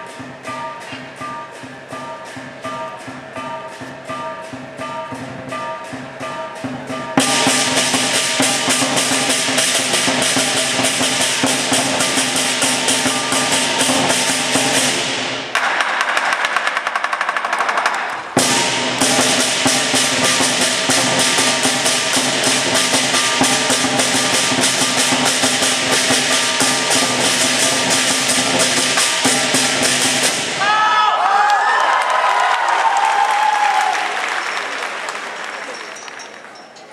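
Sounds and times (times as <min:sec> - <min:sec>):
clashing cymbals: 0:00.0 - 0:17.2, 0:17.8 - 0:30.7
drum beating fast rhythm: 0:00.0 - 0:30.8.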